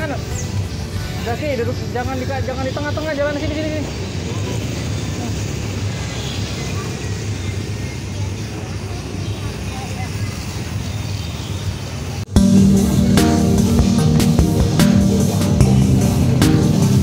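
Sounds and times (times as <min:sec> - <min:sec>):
faint voices: 0:00.0 - 0:17.0
traffic rumble: 0:00.0 - 0:17.0
background music: 0:12.3 - 0:17.0.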